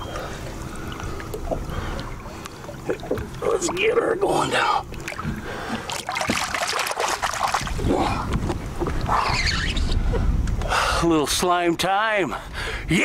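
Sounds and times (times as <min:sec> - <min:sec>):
water splashing against boat: 0:00.0 - 0:09.9
low rumble: 0:07.2 - 0:10.6.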